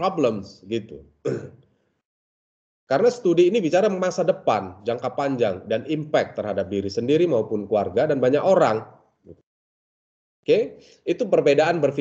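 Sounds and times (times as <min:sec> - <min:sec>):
man clearing throat: 0:01.2 - 0:01.7.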